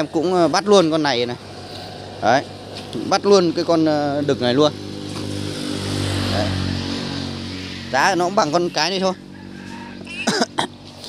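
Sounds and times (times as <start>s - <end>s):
engine humming with hiss: 0.0s - 11.0s.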